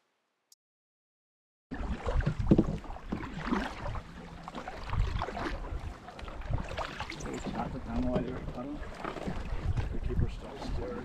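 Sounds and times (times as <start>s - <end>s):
paddle strokes: 1.7s - 11.0s
water washing along hulls: 1.7s - 11.0s
wind buffeting microphone: 3.6s - 11.0s.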